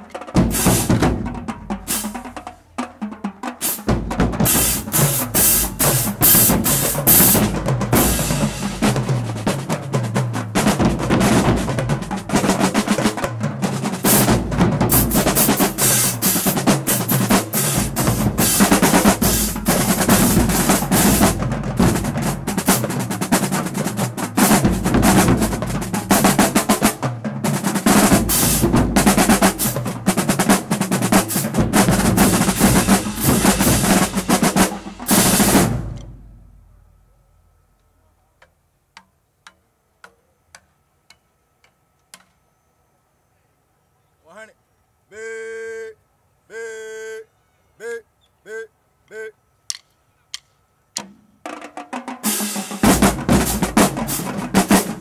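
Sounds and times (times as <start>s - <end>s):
marching drumline cadence: 0.0s - 37.6s, 44.3s - 55.0s.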